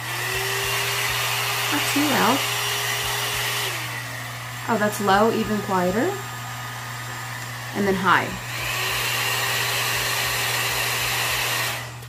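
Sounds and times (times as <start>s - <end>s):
hot-air brush blowing: 0.0s - 12.0s.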